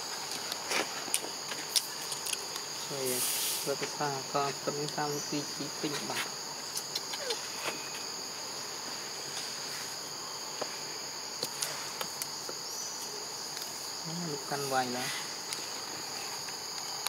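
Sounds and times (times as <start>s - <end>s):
insect chorus drone: 0.0s - 17.0s.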